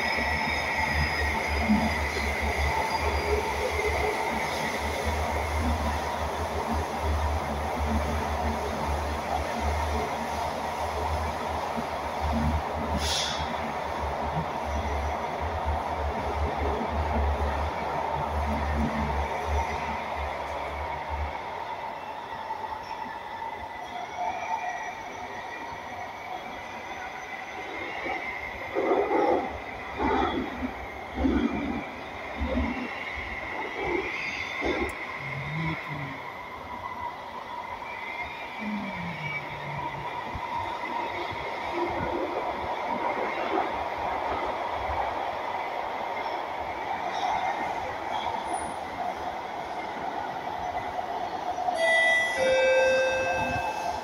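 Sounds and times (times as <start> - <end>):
train rumble with electric hum: 0.0 - 54.0.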